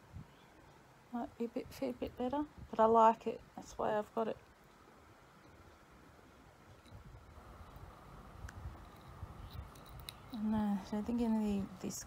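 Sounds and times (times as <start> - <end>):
small light clicks: 8.4 - 10.4.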